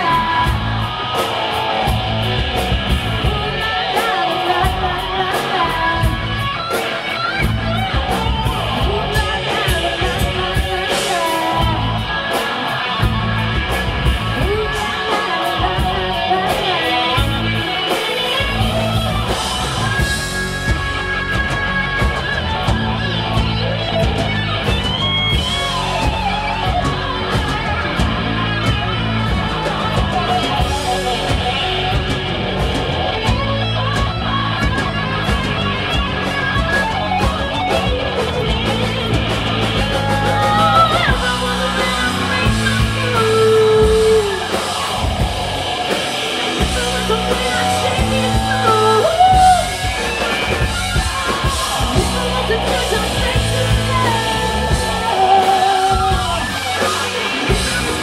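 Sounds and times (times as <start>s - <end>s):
bass guitar: 0.0s - 58.0s
drum kit beat: 0.0s - 58.0s
electric guitar lead: 0.0s - 58.0s.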